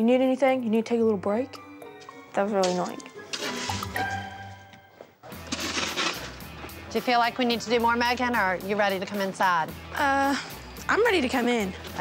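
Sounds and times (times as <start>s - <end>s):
soft background music: 0.0s - 12.0s
shovel scraping snow on concrete: 2.6s - 4.0s, 5.3s - 6.6s.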